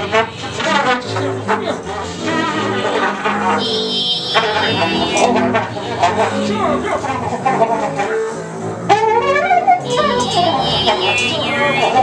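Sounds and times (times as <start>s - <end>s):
muted trumpet: 0.0s - 6.4s, 8.9s - 12.0s
bowed double bass: 0.0s - 12.0s
high thin held tone: 3.6s - 5.6s, 10.0s - 12.0s.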